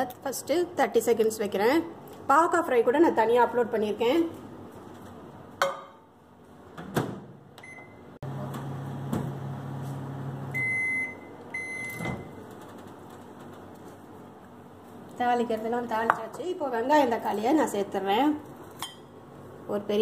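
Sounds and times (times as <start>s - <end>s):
microwave oven humming: 4.6s - 15.0s
keypad beep: 7.6s - 8.0s, 10.6s - 12.3s
long microwave beeps: 7.6s - 8.2s, 10.4s - 12.4s.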